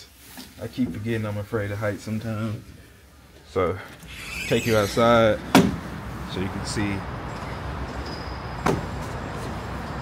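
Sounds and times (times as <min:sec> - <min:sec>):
city traffic hum: 0:00.0 - 0:10.0.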